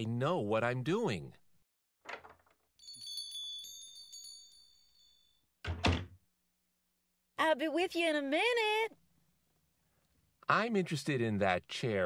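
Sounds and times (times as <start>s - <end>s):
door shutting with thud: 2.0s - 2.6s, 5.6s - 6.2s
shop doorbell chime: 2.8s - 5.5s.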